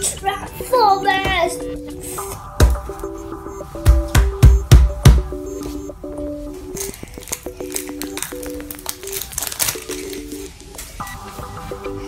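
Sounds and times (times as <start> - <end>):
background music held-note melody: 0.0 - 12.0
plastic wrapper crinkling: 6.7 - 11.0.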